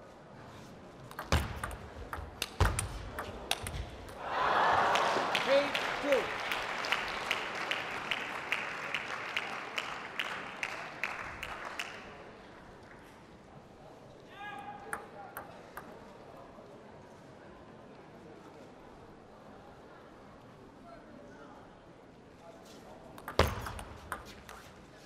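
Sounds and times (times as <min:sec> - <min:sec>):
table tennis ball clicking: 0:01.0 - 0:04.2, 0:23.2 - 0:24.6
crowd shouts: 0:04.2 - 0:06.2
crowd applause: 0:04.2 - 0:12.2.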